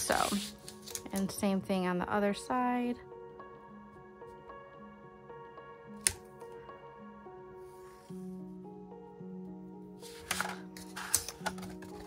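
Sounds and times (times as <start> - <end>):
soft background music: 0.0 - 12.0
cardstock rustling: 10.0 - 12.0.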